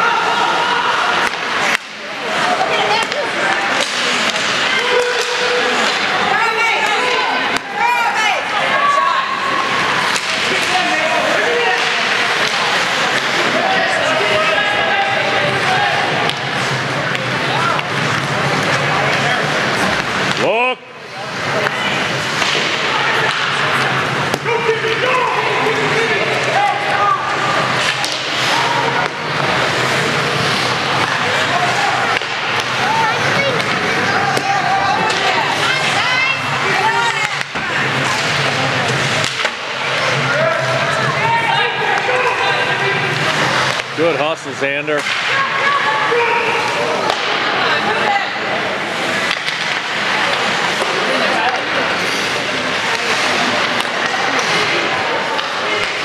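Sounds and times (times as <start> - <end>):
crowd talking and calling out: 0.0 - 56.0
faint knocks of sticks and puck: 1.2 - 2.0, 3.0 - 6.1, 10.0 - 11.0, 11.6 - 13.6, 22.2 - 25.1, 27.7 - 32.8, 37.0 - 40.7, 45.0 - 45.4, 49.2 - 56.0.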